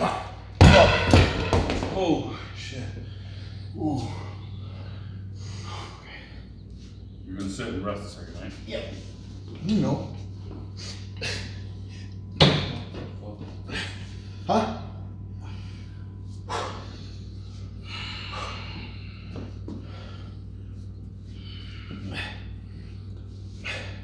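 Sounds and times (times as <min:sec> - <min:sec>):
steady low hum: 0:00.0 - 0:24.0
metal dumbbells knocking: 0:00.6 - 0:02.2.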